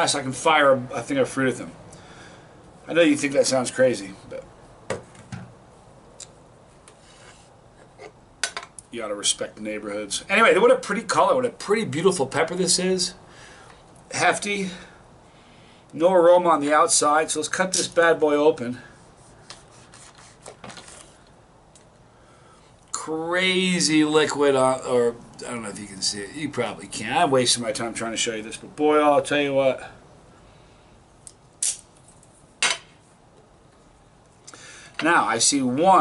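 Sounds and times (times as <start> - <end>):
light rubbing: 6.8 - 8.2, 18.8 - 21.3.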